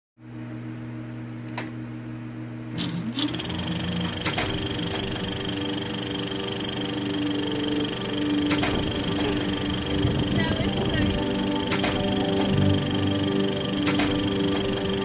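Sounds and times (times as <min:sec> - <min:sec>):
steady low hum: 0:00.2 - 0:15.0
high whine: 0:02.7 - 0:15.0
held tones: 0:02.8 - 0:15.0.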